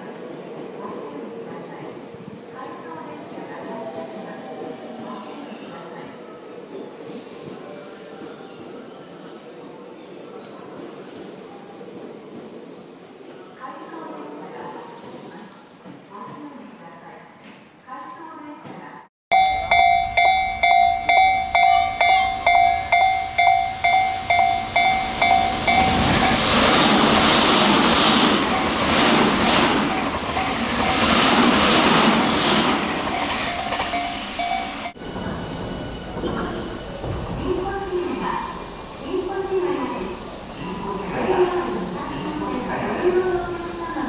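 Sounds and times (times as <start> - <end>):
level-crossing alarm dinging: 19.3 - 27.2, 28.2 - 31.3, 32.7 - 37.2
train passing with rush: 19.3 - 44.0.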